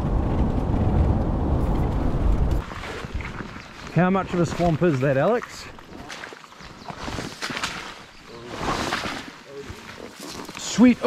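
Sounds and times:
footsteps through wet grass: 2.6 - 11.0
leaves swishing against legs: 5.9 - 11.0.

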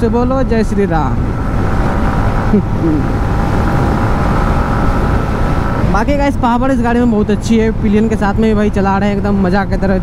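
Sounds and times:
motorcycle engine drone: 0.0 - 10.0
wind on microphone: 1.2 - 6.3.

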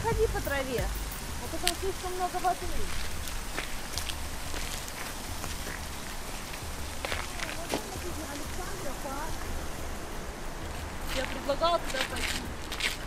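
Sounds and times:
steady hiss: 0.0 - 13.0
faint voices: 5.1 - 12.6.

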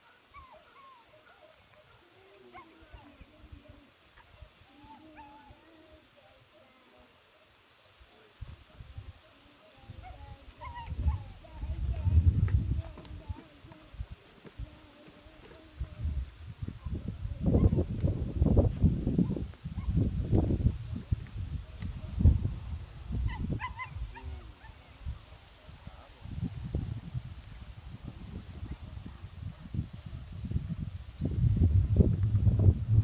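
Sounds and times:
puppy whimpering: 0.3 - 1.4, 10.6 - 12.3, 23.3 - 24.8.

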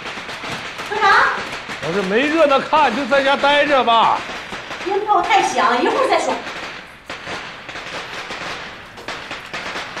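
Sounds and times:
firecrackers crackling: 0.0 - 10.0.

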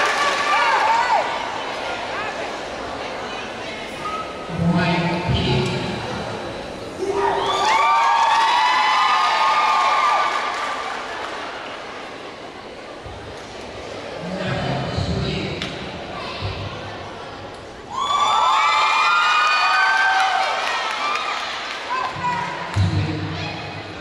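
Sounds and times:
crowd cheering: 0.0 - 2.2, 7.0 - 12.4, 17.9 - 22.9.

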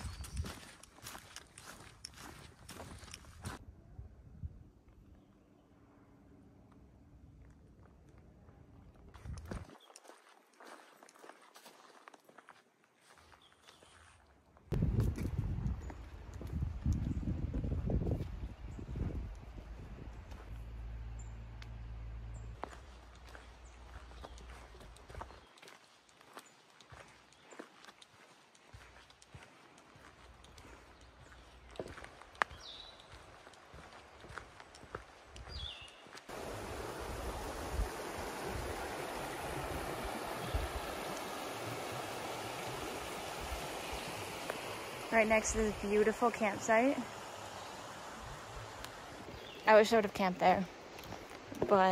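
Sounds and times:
footsteps on dirt and leaves: 0.0 - 3.6, 9.1 - 18.4, 22.3 - 36.4
creek rushing: 28.1 - 51.9.

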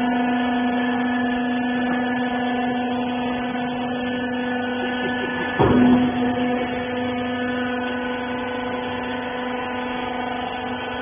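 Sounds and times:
electric motor humming: 0.0 - 11.0.

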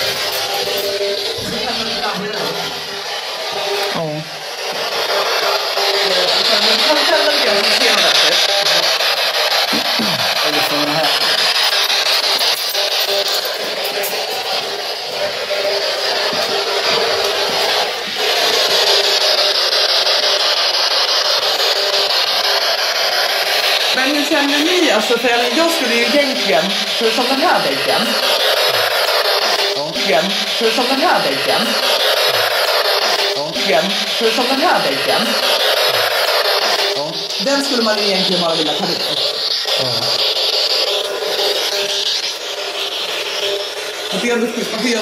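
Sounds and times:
static hiss: 0.0 - 45.0.

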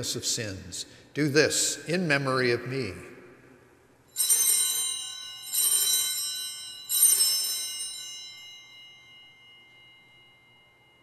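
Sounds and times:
altar bell ringing: 4.0 - 11.0.

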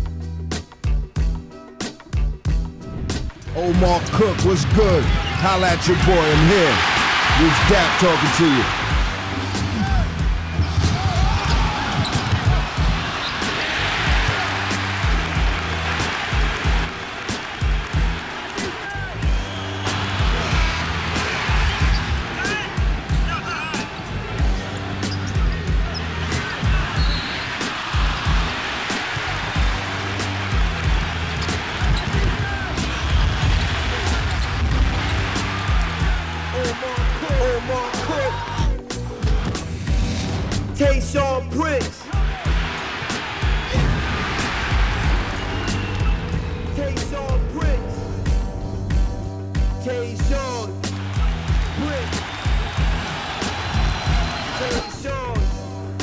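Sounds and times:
music with beat and bass line: 0.0 - 23.5, 24.1 - 56.0
basketballs bouncing on court: 9.9 - 14.5, 30.6 - 35.9.

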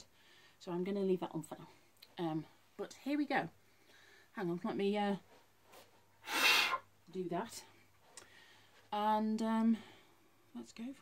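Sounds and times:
person sharp breath: 6.2 - 6.8.

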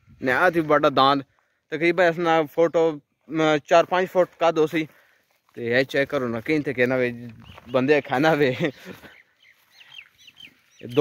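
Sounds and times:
man speaking: 0.1 - 9.1, 10.8 - 11.0
high bird chirps: 7.3 - 11.0.

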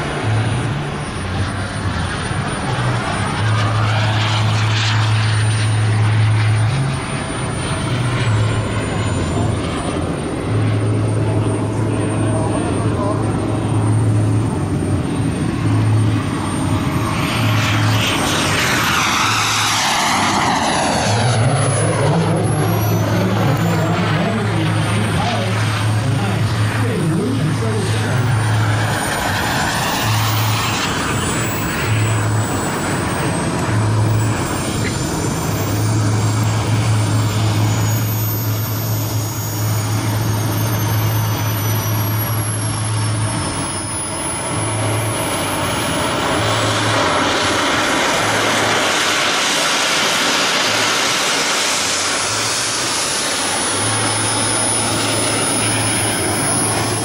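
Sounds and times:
low hum: 0.0 - 57.0
model jet turbine whine: 0.0 - 57.0.

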